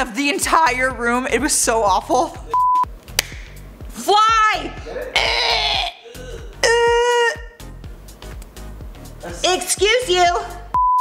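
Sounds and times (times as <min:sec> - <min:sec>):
woman's voice: 0:00.0 - 0:02.5, 0:04.0 - 0:04.9, 0:09.4 - 0:10.6
background music with beat: 0:00.9 - 0:11.0
breathy cry: 0:04.8 - 0:07.6
held pitched yell: 0:04.9 - 0:06.0.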